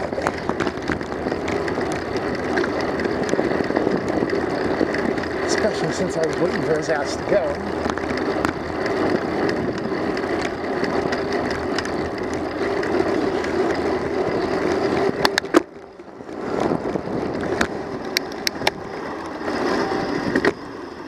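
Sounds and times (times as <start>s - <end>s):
sharp clicks or rattles: 0.0s - 19.4s
tyres rumbling on pavement: 0.0s - 21.0s.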